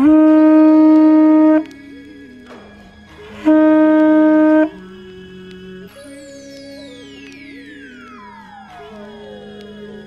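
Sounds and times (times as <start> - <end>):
conch shell trumpet note: 0.0 - 1.9, 3.4 - 4.9.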